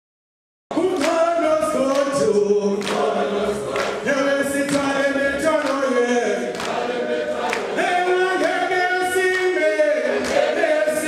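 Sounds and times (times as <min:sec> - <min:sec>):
group singing in harmony: 0:00.7 - 0:11.0.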